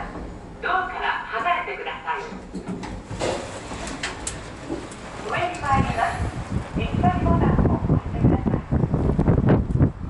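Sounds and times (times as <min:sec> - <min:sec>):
elevator doors sliding open: 0:02.2 - 0:07.7.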